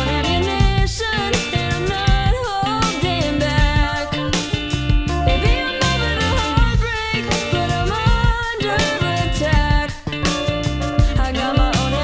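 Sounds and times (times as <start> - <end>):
live band soul-pop groove: 0.0 - 12.0
gliding melody line: 3.8 - 7.9.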